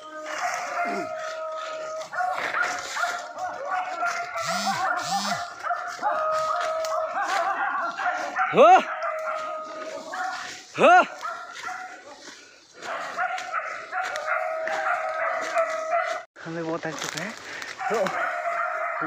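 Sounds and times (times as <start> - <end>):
dog barking: 0.3 - 16.3, 17.8 - 19.0.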